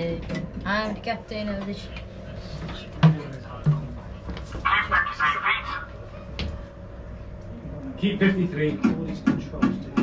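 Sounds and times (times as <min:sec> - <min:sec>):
faint steady hum: 0:00.0 - 0:08.8
voices talking: 0:01.8 - 0:06.1.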